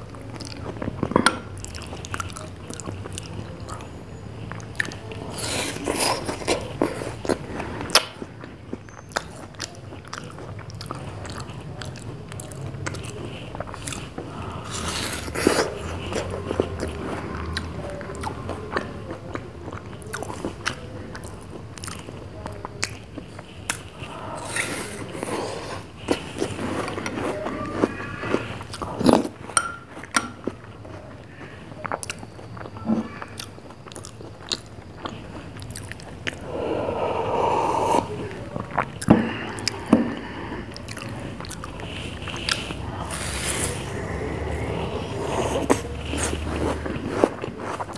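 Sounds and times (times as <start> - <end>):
chewing and lip smacks: 0.1 - 47.9
soft slurping: 1.6 - 18.9, 19.9 - 32.5, 33.3 - 47.9.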